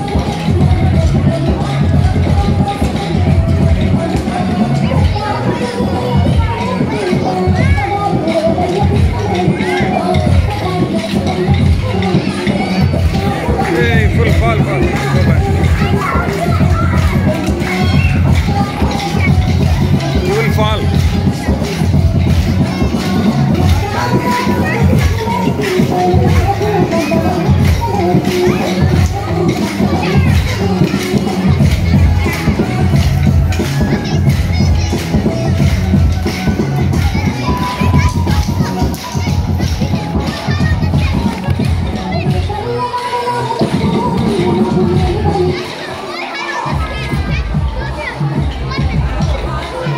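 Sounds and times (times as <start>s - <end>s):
crowd voices and shouts: 0.0s - 49.9s
dance music with heavy bass beat: 6.2s - 42.7s.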